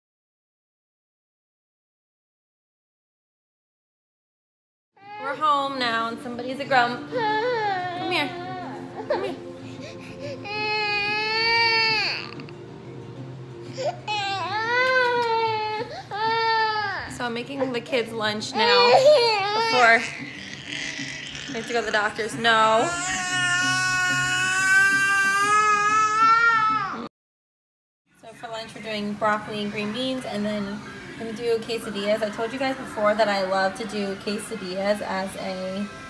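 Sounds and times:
toddler crying: 0:07.0 - 0:09.4, 0:10.2 - 0:12.6, 0:13.8 - 0:17.2, 0:18.5 - 0:27.1.

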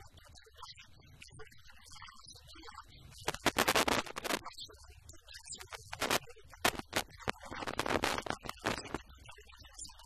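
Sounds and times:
scratchy rustling bursts: 0:03.2 - 0:04.4, 0:05.8 - 0:09.0.

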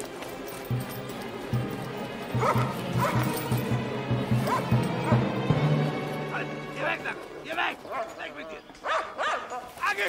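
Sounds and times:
film music with pulsing low note: 0:00.0 - 0:08.4
dog barking: 0:02.4 - 0:03.4, 0:04.4 - 0:05.3, 0:08.8 - 0:09.7.

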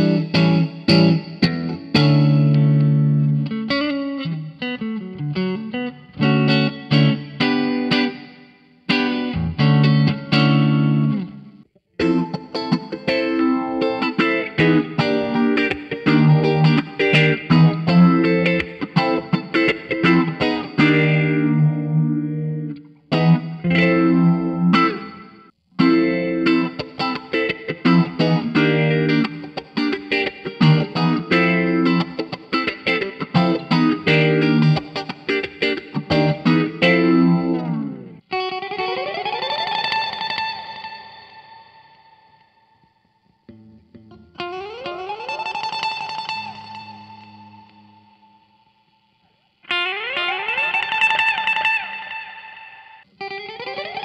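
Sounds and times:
electric guitar strummed chords: 0:00.0 - 0:48.8, 0:49.6 - 0:54.0.

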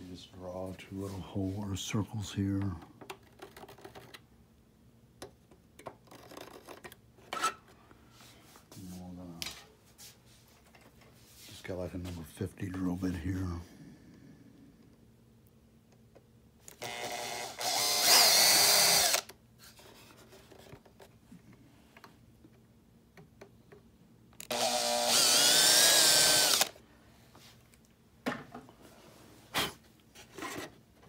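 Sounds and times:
small electric drill running: 0:16.8 - 0:19.3, 0:24.4 - 0:26.8.

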